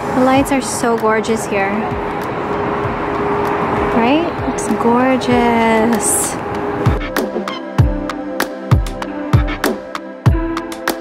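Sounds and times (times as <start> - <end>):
passing cars: 0.0 - 8.4.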